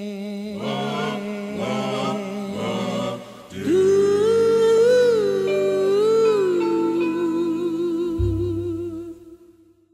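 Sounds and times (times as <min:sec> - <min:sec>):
background vocal harmonies: 0:00.0 - 0:09.8
long held sung note: 0:05.4 - 0:09.4.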